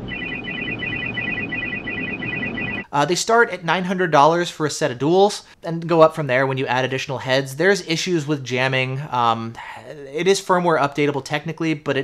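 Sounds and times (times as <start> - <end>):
warbling high electronic beeps: 0.0 - 2.9.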